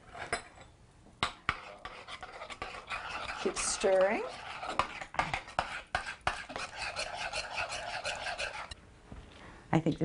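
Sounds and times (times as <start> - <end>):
rhythmic scraping in bowl: 1.2 - 8.8.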